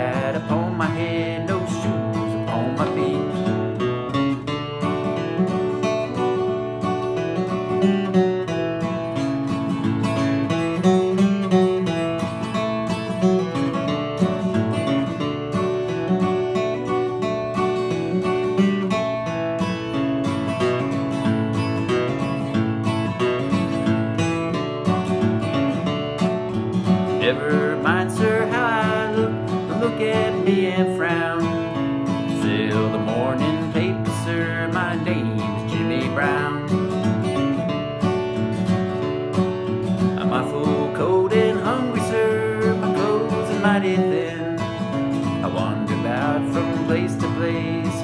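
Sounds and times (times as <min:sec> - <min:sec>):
acoustic guitar playing: 0:00.0 - 0:48.0.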